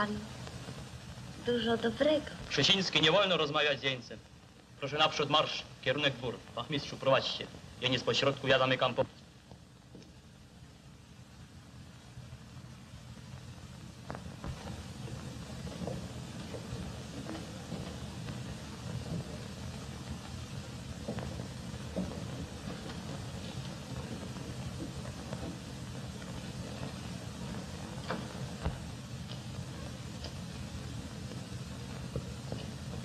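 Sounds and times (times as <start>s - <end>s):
film soundtrack hiss and hum: 0.0s - 33.0s
clicks and crackles: 12.5s - 33.0s.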